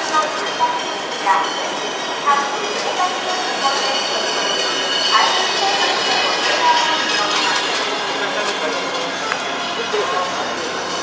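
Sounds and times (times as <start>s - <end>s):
distant voices: 0.0s - 11.0s
steady mechanical noise: 0.0s - 11.0s.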